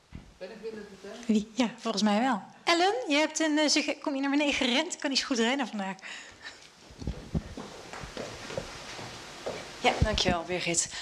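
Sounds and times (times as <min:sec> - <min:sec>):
footsteps hurrying down stairs: 0:07.0 - 0:10.4.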